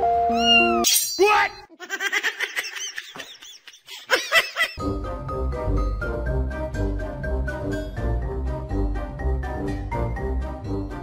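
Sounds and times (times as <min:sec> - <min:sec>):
music: 0:00.0 - 0:00.8, 0:04.8 - 0:11.0.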